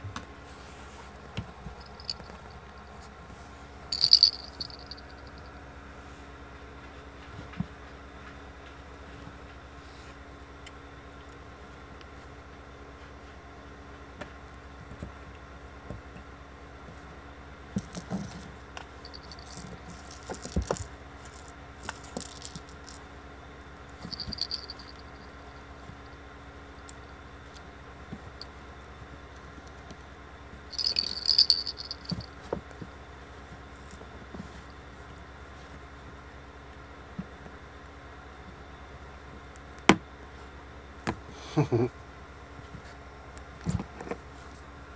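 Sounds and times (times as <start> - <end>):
faint steady hum: 0.0 - 44.9
toy rattling: 1.8 - 3.0, 3.9 - 5.5, 19.0 - 23.0, 24.0 - 25.5, 30.7 - 32.3.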